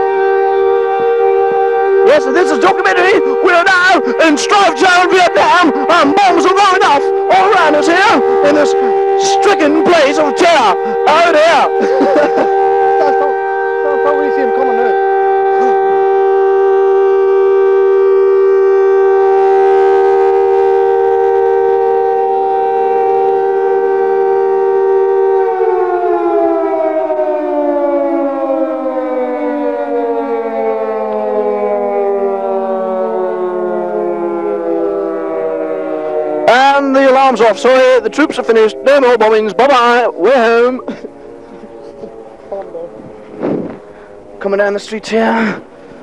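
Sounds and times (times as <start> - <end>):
air-raid siren winding down: 0.0 - 46.0.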